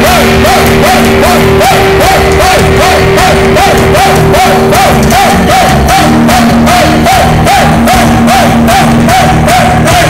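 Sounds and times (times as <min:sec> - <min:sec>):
drum kit fast beat: 0:00.0 - 0:10.0
repeated melodic guitar figure: 0:00.0 - 0:10.0
rock band playing live: 0:00.0 - 0:10.0.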